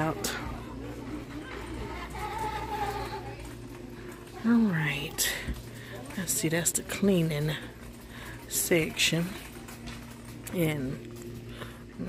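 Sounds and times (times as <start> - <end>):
faint store background music: 0.0 - 12.0
steady low hum: 0.0 - 12.0.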